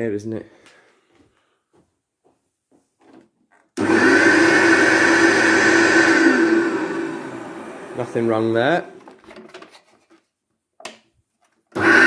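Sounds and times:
vacuum cleaner motor whine: 3.8 - 9.0, 11.8 - 12.0.

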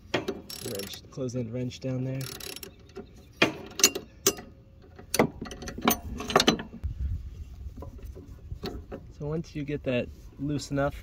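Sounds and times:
ratchet and wrench clicking: 0.2 - 1.0, 2.2 - 2.8.

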